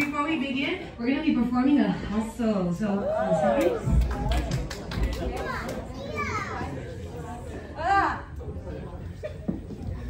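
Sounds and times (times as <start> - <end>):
audience chatter: 0.0 - 10.0
children's voices: 5.3 - 6.9.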